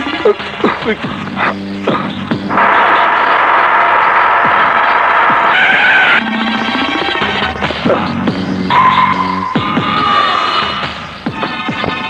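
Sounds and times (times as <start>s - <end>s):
high steady horn-like tone: 8.7s - 9.7s
bus brakes squealing: 8.7s - 10.6s.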